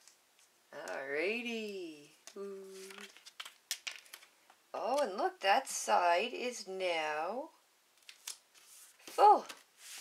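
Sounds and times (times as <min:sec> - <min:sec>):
paper stickers crinkling: 0:02.6 - 0:04.3, 0:08.0 - 0:10.0.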